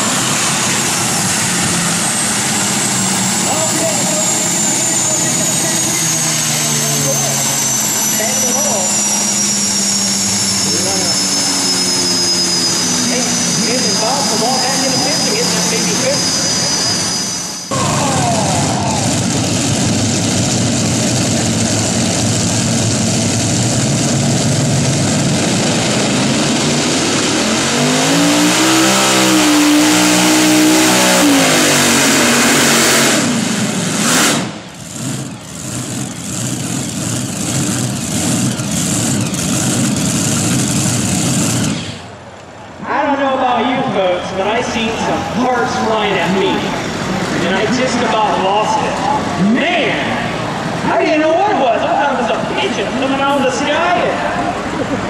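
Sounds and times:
high steady whine: 0.0s - 55.0s
tractor engines running loud: 0.0s - 55.0s.

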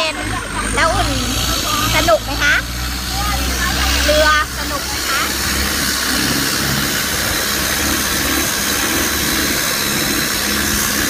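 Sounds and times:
boat engine droning: 0.0s - 11.0s
wind and water hiss: 1.0s - 11.0s.

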